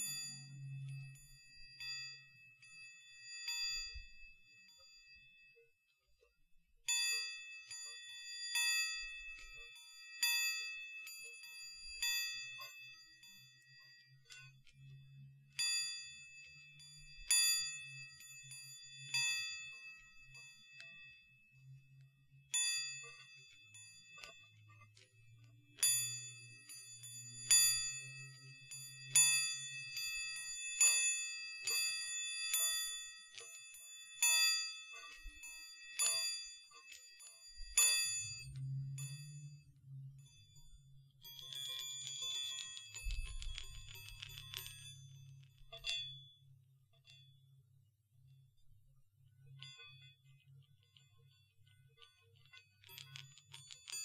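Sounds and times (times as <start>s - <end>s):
chiming balls ringing: 0.0s - 5.6s, 6.9s - 47.6s.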